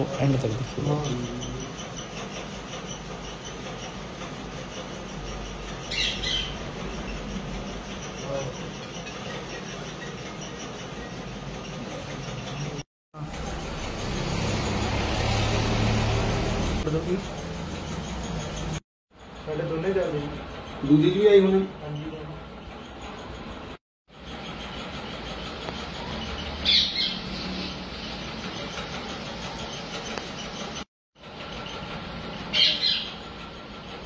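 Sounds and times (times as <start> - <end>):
road noise: 13.2 - 18.8
vehicle engine hum: 13.2 - 18.8.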